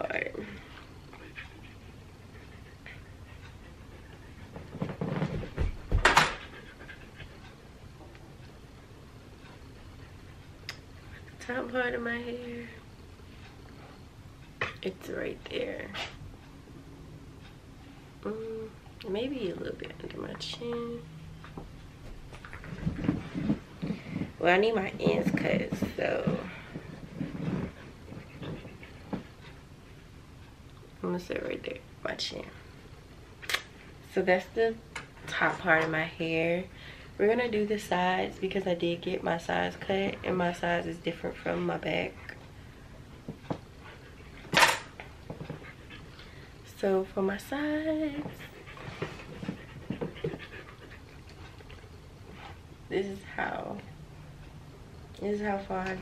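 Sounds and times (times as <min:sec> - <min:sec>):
dog panting: 0:00.5 - 0:11.4, 0:21.4 - 0:30.6, 0:39.8 - 0:52.7.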